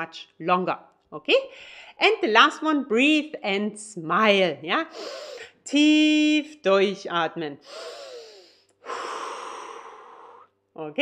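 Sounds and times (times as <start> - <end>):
woman breathing deeply: 5.0 - 5.6, 7.6 - 10.6.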